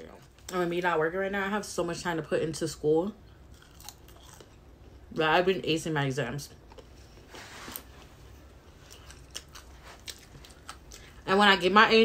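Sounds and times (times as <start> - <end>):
chewing crunchy food: 3.2 - 5.0, 6.5 - 11.2.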